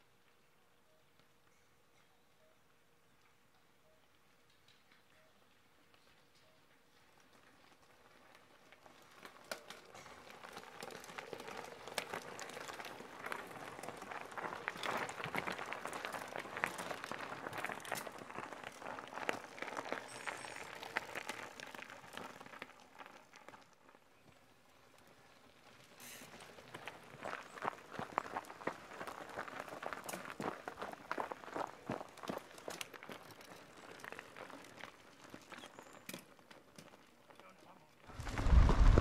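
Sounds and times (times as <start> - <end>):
bikes rattling and clicking: 0.0 - 39.0
tyres crunching over gravel: 6.9 - 39.0.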